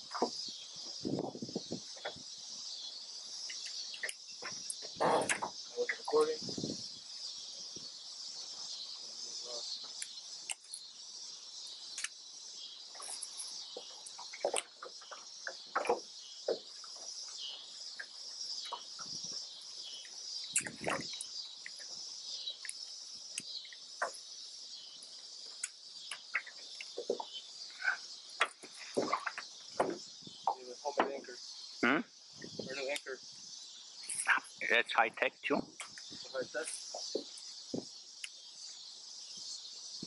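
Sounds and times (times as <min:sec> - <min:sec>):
crickets trilling: 0:00.0 - 0:40.0.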